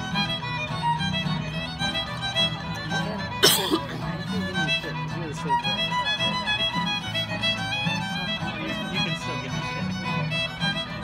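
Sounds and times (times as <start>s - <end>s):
fiddle melody: 0.0s - 11.0s.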